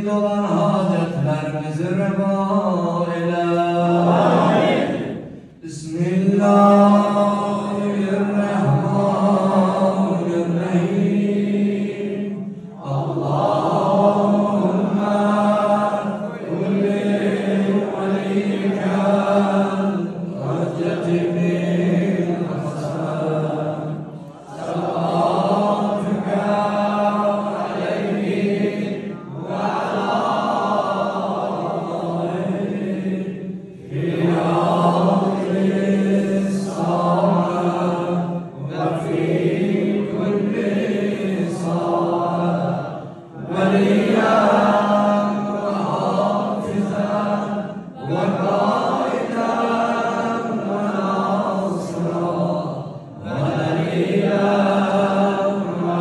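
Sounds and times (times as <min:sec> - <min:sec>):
man chanting over loudspeakers: 0:00.0 - 0:56.0.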